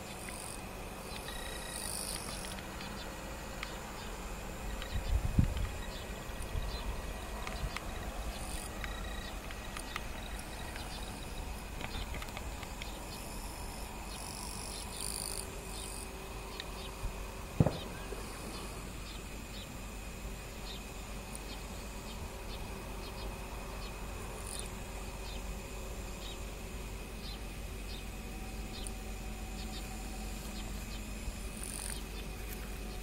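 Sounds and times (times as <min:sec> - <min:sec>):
insects calling: 0:00.0 - 0:33.0.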